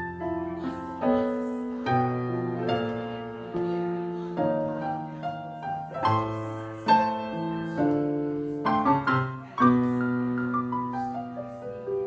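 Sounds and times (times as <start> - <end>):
slow piano chords on keyboard: 0.0 - 12.0.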